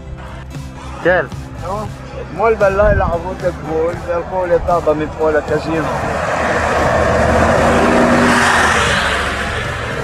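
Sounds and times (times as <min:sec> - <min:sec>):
bus driving past: 0:03.8 - 0:10.0.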